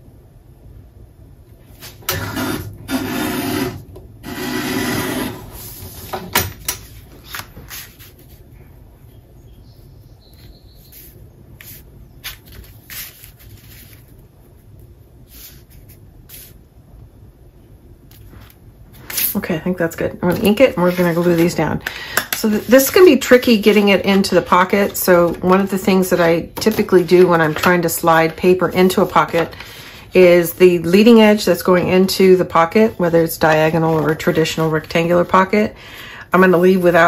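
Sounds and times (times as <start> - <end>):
paper rustling and sliding: 1.7 - 6.2, 6.8 - 8.5, 10.8 - 14.3, 15.2 - 16.6, 20.3 - 21.6, 22.4 - 29.9, 32.7 - 35.5.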